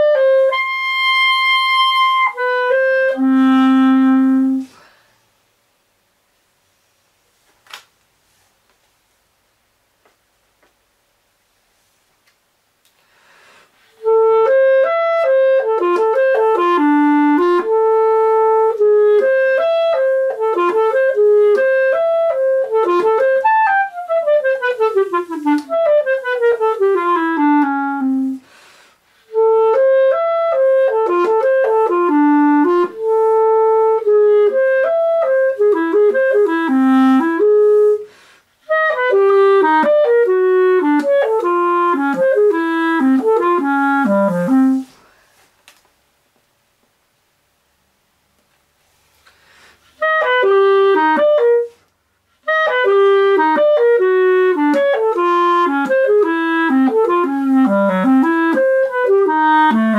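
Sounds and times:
player breathing: 0:13.0 - 0:13.9, 0:28.4 - 0:29.2, 0:49.2 - 0:50.0
clarinet playing scale runs: 0:14.0 - 0:28.4, 0:38.7 - 0:44.9, 0:52.5 - 0:59.9.

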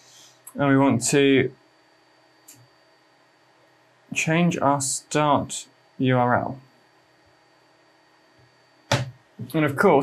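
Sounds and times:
man speaking: 0:00.5 - 0:01.5, 0:04.1 - 0:06.6, 0:09.4 - 0:10.0.

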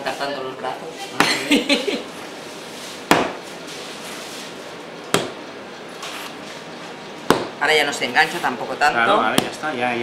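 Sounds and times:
dough slapped onto table: 0:03.1 - 0:03.4, 0:07.3 - 0:07.6.

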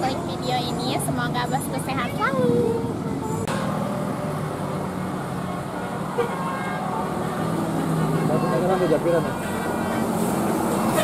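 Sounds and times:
bus engine droning: 0:00.0 - 0:11.0
bus horn tooting: 0:05.4 - 0:11.0.

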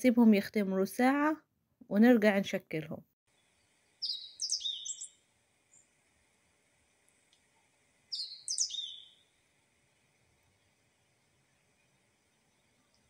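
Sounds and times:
songbird chirping: 0:03.3 - 0:06.0, 0:07.3 - 0:10.8.

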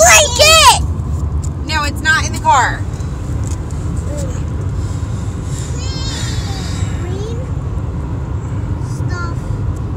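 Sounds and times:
car cabin road and engine rumble: 0:00.0 - 0:09.9.

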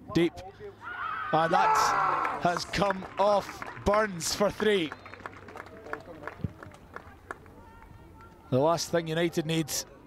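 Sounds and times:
distant voices and shouts: 0:00.6 - 0:02.6.

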